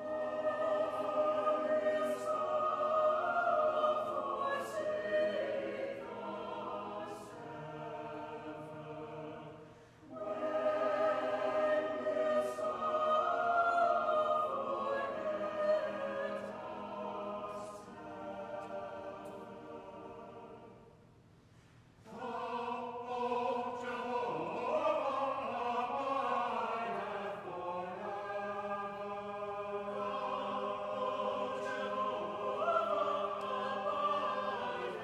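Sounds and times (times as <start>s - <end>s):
mixed choir singing: 0.0s - 21.0s, 22.0s - 35.0s.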